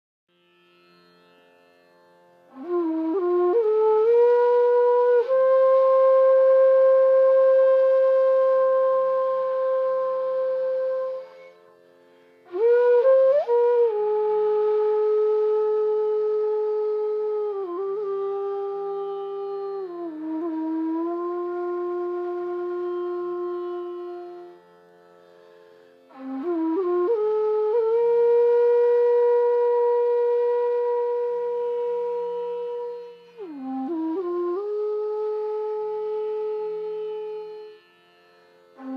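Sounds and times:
bamboo flute playing: 0:02.5 - 0:11.8, 0:12.4 - 0:24.8, 0:26.0 - 0:38.1.

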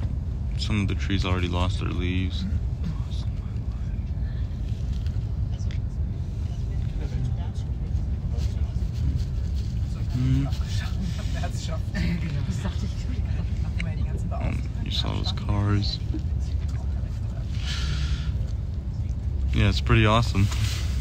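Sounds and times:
train cabin low rumble: 0:00.0 - 0:21.0.

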